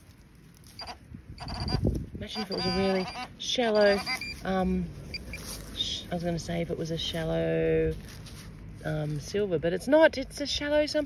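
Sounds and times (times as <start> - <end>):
metal detector beeps: 0.7 - 5.5.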